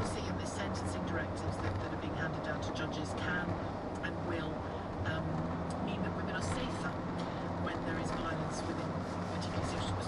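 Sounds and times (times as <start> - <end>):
road and engine noise in cabin: 0.0 - 10.0.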